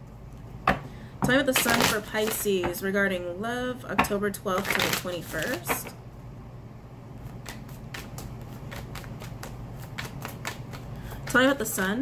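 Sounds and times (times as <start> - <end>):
cards being shuffled: 4.6 - 5.9, 7.2 - 11.3.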